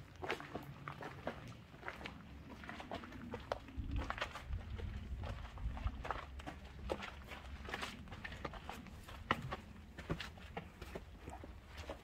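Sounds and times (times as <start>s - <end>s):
footsteps on hard ground: 0.1s - 12.0s.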